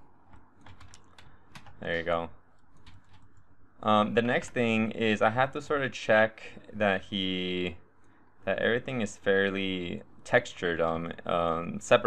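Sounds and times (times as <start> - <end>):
computer keyboard keys clicking: 0.6 - 1.8, 2.8 - 3.2.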